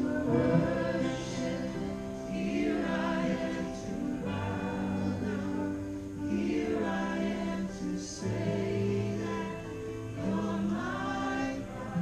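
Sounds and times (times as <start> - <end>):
voices singing held notes: 0.0 - 12.0.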